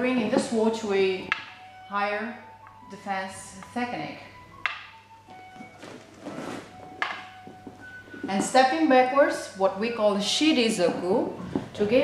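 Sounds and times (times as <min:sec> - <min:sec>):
wooden swords knocking: 0:01.3 - 0:01.6, 0:04.6 - 0:05.4, 0:06.9 - 0:08.6.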